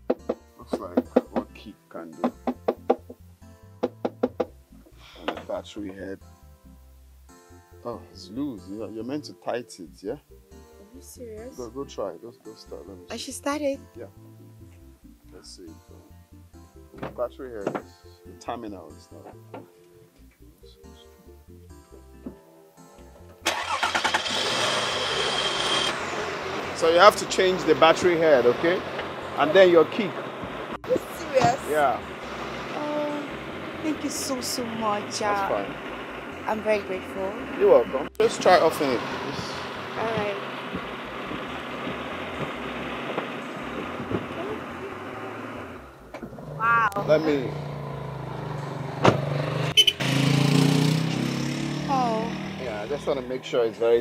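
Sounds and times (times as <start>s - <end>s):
soft background music: 0.0s - 24.9s, 26.2s - 41.2s, 46.8s - 54.0s
car engine starting and running: 23.1s - 54.0s.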